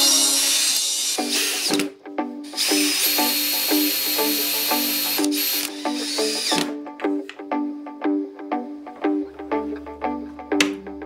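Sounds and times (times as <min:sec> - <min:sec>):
cordless drill motor whining: 0:00.0 - 0:01.9, 0:02.5 - 0:06.8
music with plucked notes: 0:00.0 - 0:11.0.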